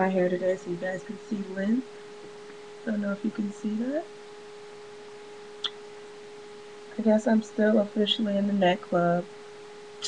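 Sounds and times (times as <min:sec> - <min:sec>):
faint single-pitched hum: 0:00.0 - 0:10.0.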